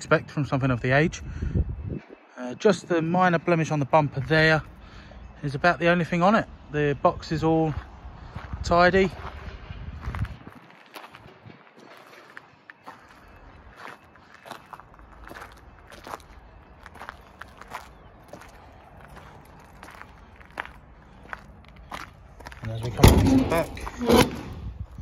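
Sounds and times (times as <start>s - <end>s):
footsteps on ground outdoors: 2.8s - 25.0s.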